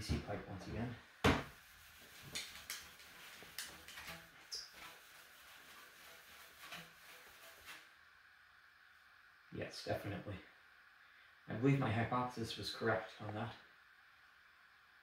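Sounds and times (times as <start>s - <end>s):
cloth rubbing pipe: 1.5s - 8.0s.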